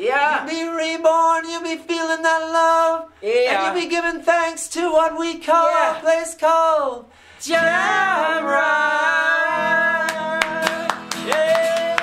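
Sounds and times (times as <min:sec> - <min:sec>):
acoustic guitar: 0:00.0 - 0:12.0
hand claps: 0:10.0 - 0:12.0.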